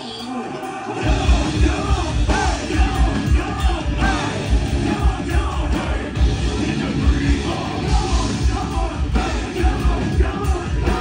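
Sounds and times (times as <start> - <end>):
drums: 0.0 - 11.0
vocals: 0.0 - 11.0
electric bass: 1.0 - 11.0.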